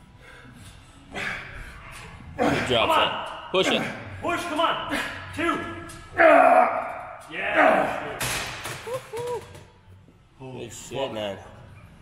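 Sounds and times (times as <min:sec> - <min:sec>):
men shouting and grunting: 0:02.3 - 0:08.3.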